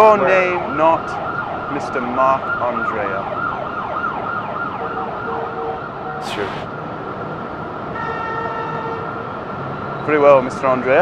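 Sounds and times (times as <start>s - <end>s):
emergency vehicle siren: 1.0s - 6.8s.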